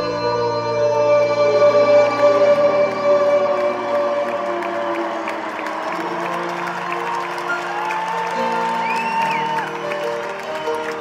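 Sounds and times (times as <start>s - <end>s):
live band playing chords with piano: 0.0s - 11.0s
crowd cheering and applause: 0.9s - 11.0s.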